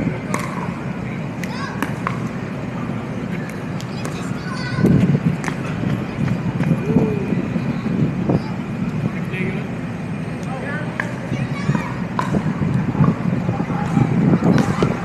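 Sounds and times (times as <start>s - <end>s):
distant voices: 0.0s - 15.0s
low background noise: 0.0s - 15.0s.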